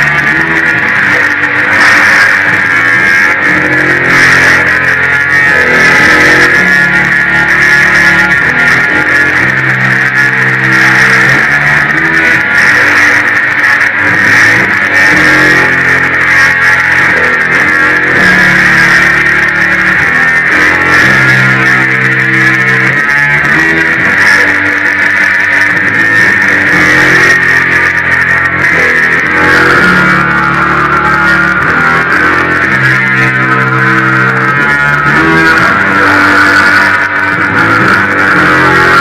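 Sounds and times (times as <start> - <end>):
electric guitar chords: 0.0 - 39.0
noisy drone: 0.0 - 39.0.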